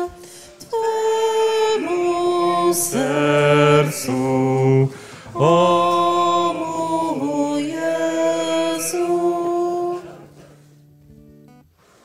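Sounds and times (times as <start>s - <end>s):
person chanting long notes: 1.7s - 10.8s.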